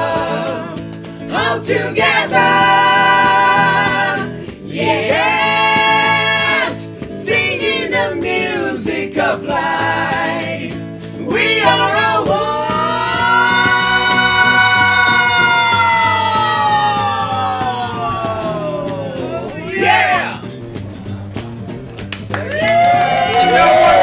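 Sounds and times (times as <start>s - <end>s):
live band with guitars: 0.0s - 24.0s
person singing: 11.2s - 19.6s.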